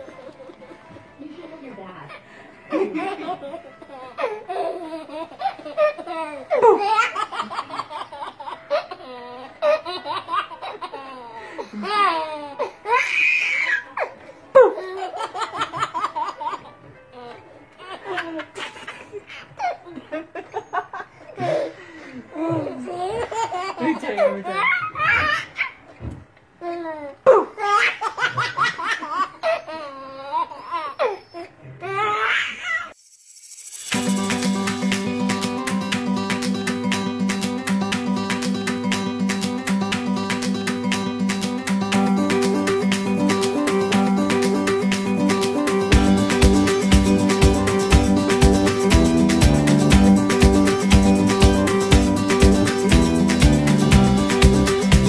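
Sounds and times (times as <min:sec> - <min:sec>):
baby laughing: 0:02.1 - 0:20.6, 0:22.4 - 0:26.0, 0:26.6 - 0:32.9.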